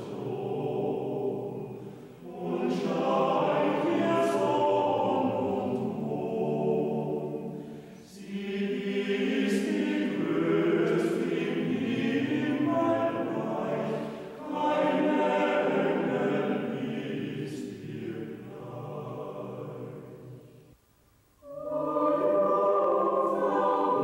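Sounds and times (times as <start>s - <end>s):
men's choir singing in harmony: 0.0s - 20.5s, 21.4s - 24.0s.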